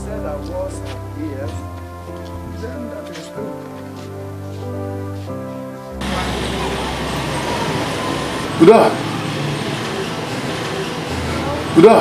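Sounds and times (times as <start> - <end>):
background music: 0.0 - 12.0
distant voices: 5.6 - 12.0
low hum: 6.0 - 12.0.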